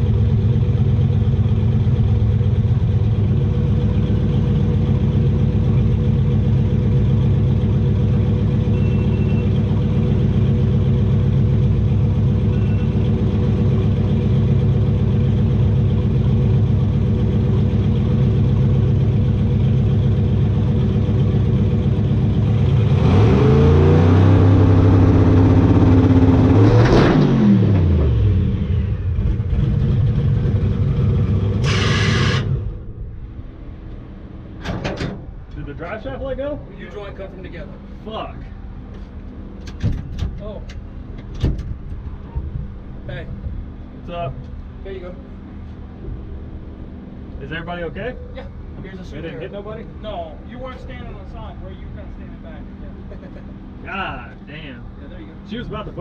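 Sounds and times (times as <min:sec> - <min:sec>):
truck engine idling and revving: 0:00.0 - 0:56.0.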